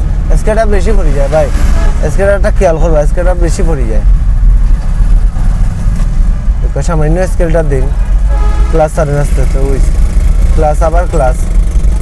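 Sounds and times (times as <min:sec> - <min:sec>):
car engine rumble: 0:00.0 - 0:12.0
road noise inside car: 0:00.0 - 0:12.0
man speaking: 0:06.6 - 0:08.1, 0:08.7 - 0:09.9, 0:10.5 - 0:11.5.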